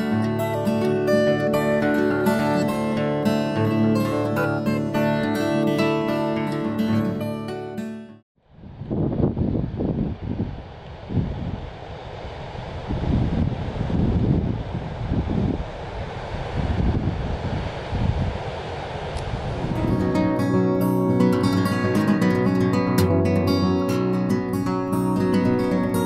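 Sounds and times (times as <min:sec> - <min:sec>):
strummed acoustic guitar: 0:00.0 - 0:08.2, 0:19.7 - 0:26.0
wind gusting across microphone: 0:08.4 - 0:22.7.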